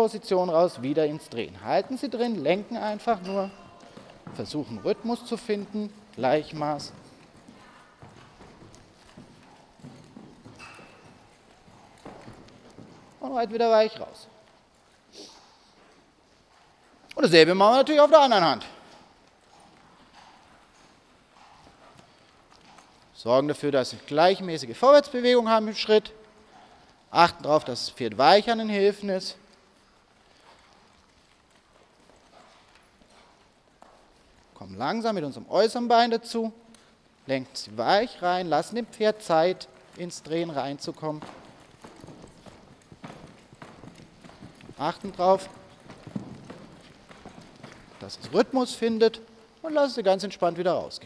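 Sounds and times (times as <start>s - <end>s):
horse hoofbeats on sand: 0.0s - 14.2s, 37.4s - 49.9s
muffled hoofbeats on sand: 39.8s - 48.8s.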